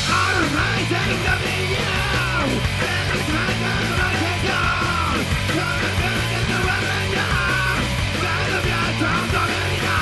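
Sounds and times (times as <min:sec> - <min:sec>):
loud rock music: 0:00.0 - 0:10.0.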